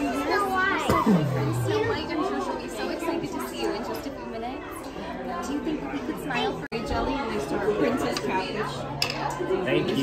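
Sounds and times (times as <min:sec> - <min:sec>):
adult voices talking: 0:00.0 - 0:10.0
restaurant chatter: 0:00.0 - 0:10.0.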